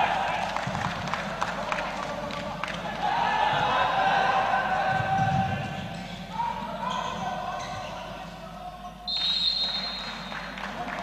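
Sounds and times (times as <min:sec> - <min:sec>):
people shouting: 0:02.9 - 0:05.8
referee whistle blast: 0:09.1 - 0:10.3.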